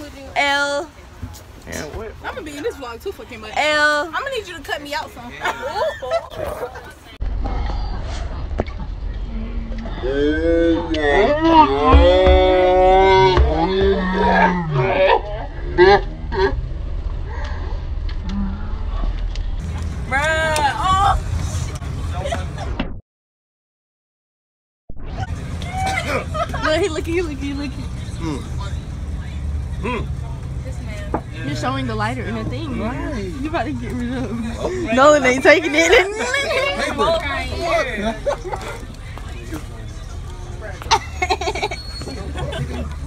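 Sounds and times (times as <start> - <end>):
bus engine rumble: 0.0 - 22.8, 25.1 - 43.0
teenagers crying out: 25.2 - 27.6.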